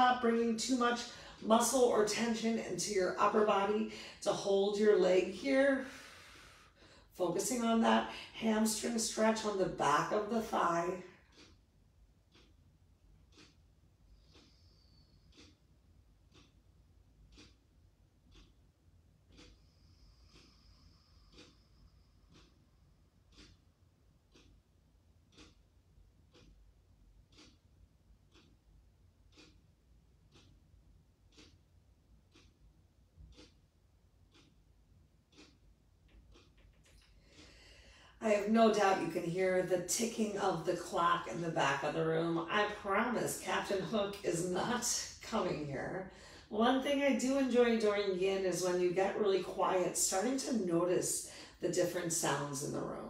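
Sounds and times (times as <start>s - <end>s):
wall clock ticking: 0.0s - 53.0s.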